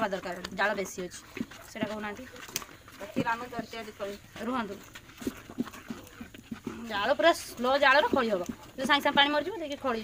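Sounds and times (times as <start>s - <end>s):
woman speaking: 0.0s - 2.4s, 3.0s - 4.9s, 6.7s - 10.0s.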